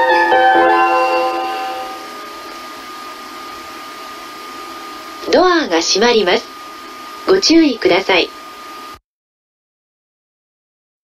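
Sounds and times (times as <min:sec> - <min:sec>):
chime-like keyboard melody: 0:00.0 - 0:02.1
platform background noise: 0:00.0 - 0:03.1, 0:05.1 - 0:08.4
faint high hum: 0:00.0 - 0:09.0.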